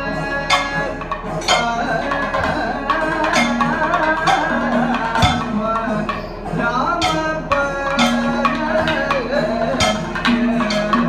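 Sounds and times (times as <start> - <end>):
drums struck in sharp strokes: 0.0 - 11.0
person singing held wavering line: 0.0 - 11.0.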